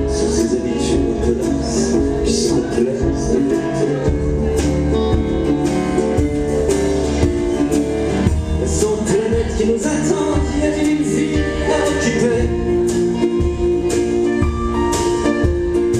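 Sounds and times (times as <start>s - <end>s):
drum kit with cymbals: 0.0s - 15.9s
nylon-string acoustic guitar: 0.0s - 15.9s.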